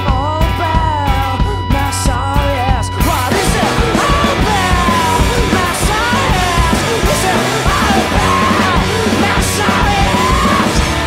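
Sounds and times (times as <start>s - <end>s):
bass: 0.0s - 11.0s
drums: 0.0s - 11.0s
electric guitars: 0.0s - 11.0s
man shouting vocals: 3.0s - 10.9s.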